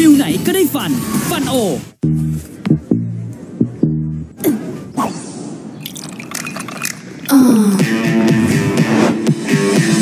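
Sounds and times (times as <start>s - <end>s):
drink pouring and splashing: 5.8s - 7.3s.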